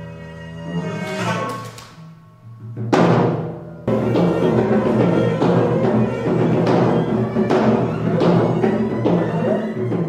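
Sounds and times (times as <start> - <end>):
drum strikes: 2.6 - 10.0.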